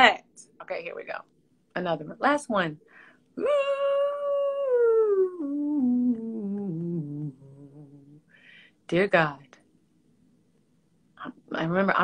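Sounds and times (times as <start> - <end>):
woman singing wordlessly: 3.4 - 8.2.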